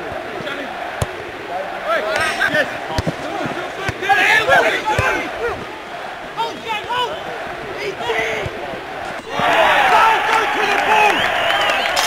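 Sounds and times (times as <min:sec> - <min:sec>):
players shouting: 0:00.0 - 0:12.0
football kicked thuds: 0:02.5 - 0:04.0.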